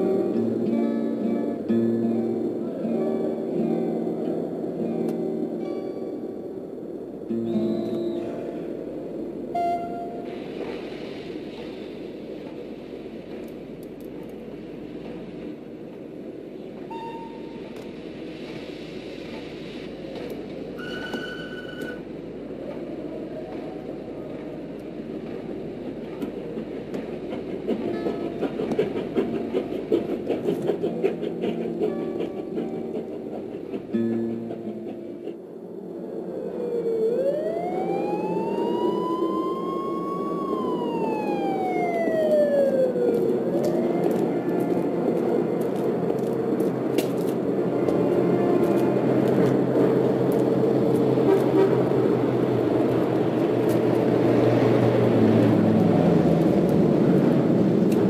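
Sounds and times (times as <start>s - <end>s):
city noise: 0.0s - 58.0s
siren wailing: 36.0s - 44.9s.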